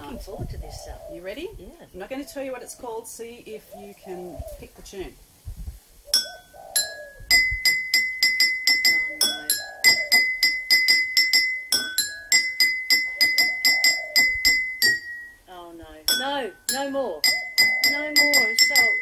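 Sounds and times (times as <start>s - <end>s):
spoon tapping water glasses: 6.2s - 15.3s, 16.1s - 19.0s.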